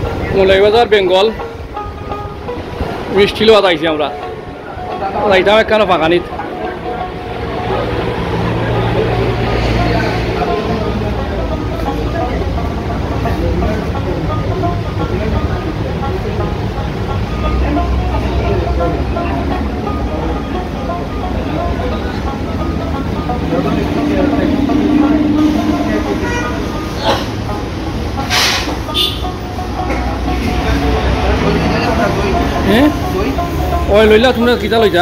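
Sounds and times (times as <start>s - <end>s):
street traffic rumble: 0.0s - 35.0s
background voices: 6.2s - 34.8s
vehicle horn: 23.6s - 31.6s.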